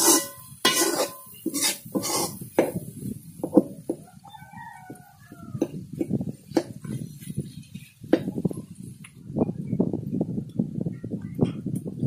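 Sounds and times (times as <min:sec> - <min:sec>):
spoon stirring thick sauce in pot: 0:00.0 - 0:02.8.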